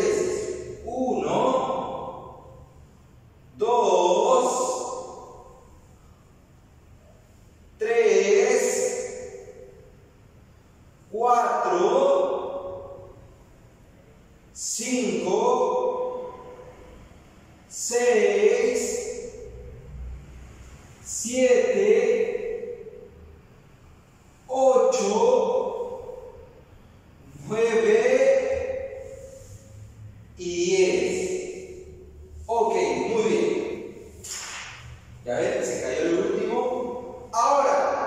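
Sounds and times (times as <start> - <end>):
man calling with echo: 0.0 - 5.8, 7.8 - 10.2, 11.0 - 13.5, 14.5 - 17.0, 17.6 - 20.0, 21.0 - 23.6, 24.4 - 38.0.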